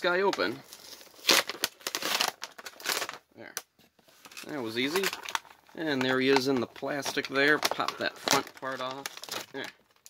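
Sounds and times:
plastic packaging crinkling and tearing: 0.0 - 10.0.

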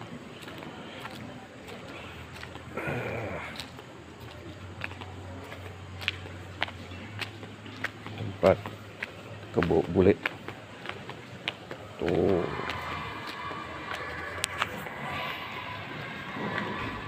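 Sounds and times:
footsteps on concrete: 0.4 - 17.0.

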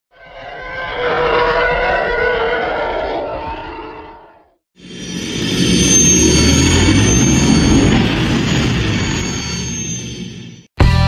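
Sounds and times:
sustained tones: 0.1 - 10.6
rushing noise: 0.1 - 10.7.

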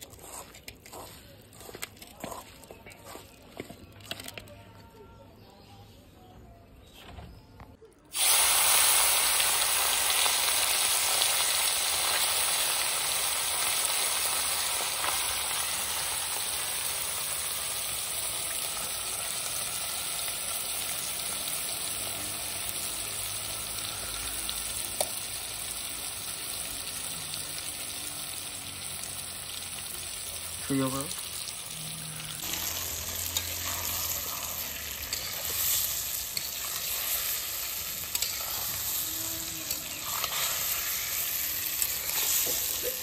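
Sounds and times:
fish sizzling in hot oil: 8.1 - 43.0.

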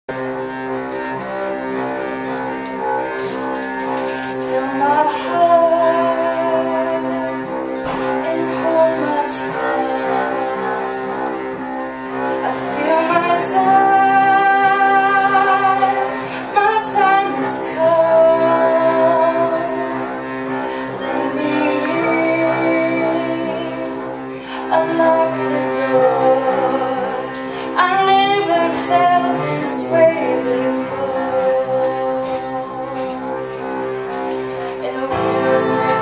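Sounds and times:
bowed cello sustained notes: 0.1 - 36.0
small acoustic band playing: 0.1 - 36.0
woman singing slow song: 4.2 - 10.6, 12.2 - 20.0, 20.8 - 36.0.

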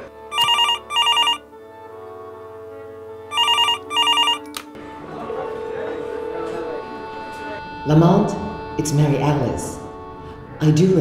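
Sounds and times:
telephone ringing with warbling trill: 0.3 - 1.4, 3.3 - 4.5.

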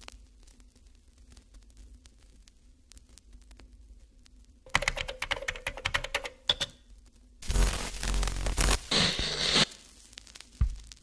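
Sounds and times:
computer keyboard typing: 4.7 - 6.8
loud burst of static: 7.4 - 10.5.

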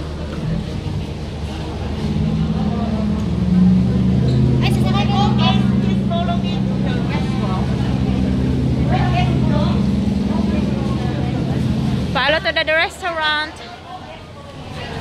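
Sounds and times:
boat engine droning: 0.0 - 15.0
people's voices: 0.0 - 15.0.

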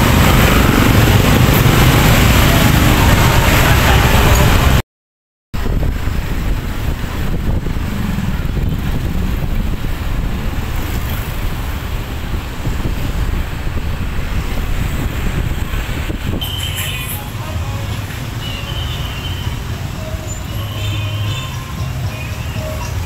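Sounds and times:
road traffic rumble: 0.0 - 4.8, 5.6 - 23.0
scooter engine and tyre noise: 0.0 - 4.8, 5.6 - 23.0.

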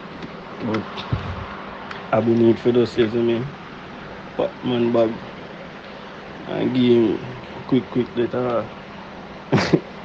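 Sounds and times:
background hiss with faint buzz: 0.0 - 10.0.

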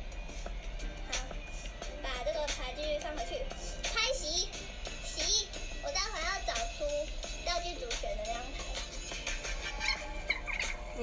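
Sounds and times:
music with high-pitched voice: 0.0 - 11.0.

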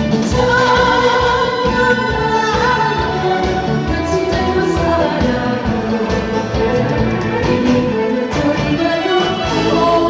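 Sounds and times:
loud instrumental accompaniment: 0.0 - 10.0
woman singing into a microphone: 0.1 - 10.0.

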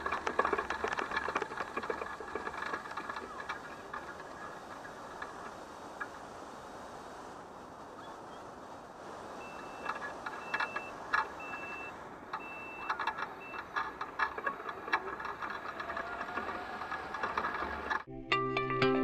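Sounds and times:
scooter knocking and rattling: 0.0 - 6.2, 9.4 - 18.1
water rushing over weir: 0.0 - 18.1
reversing beeper short beeps: 9.4 - 13.6.

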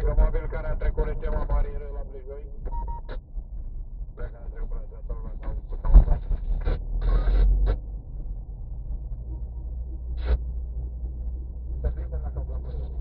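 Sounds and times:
low road rumble: 0.0 - 13.0.

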